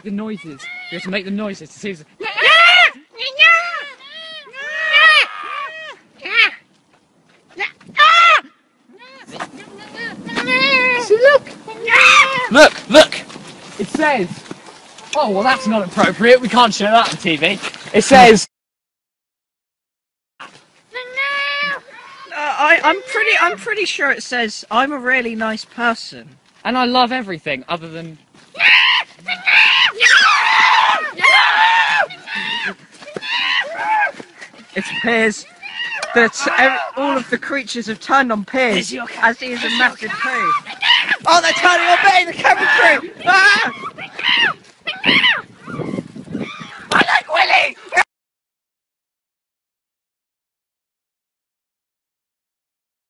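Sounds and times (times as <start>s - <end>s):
boys imitating animal cries: 0.3s - 1.2s, 2.2s - 6.6s, 7.6s - 12.6s, 20.9s - 23.6s, 28.5s - 37.2s, 39.0s - 48.0s.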